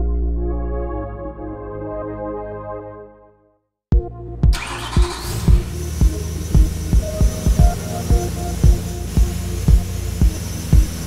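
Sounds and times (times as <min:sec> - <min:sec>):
engine starting and running: 0:04.5 - 0:11.0
hiss with rising whine: 0:04.6 - 0:11.0.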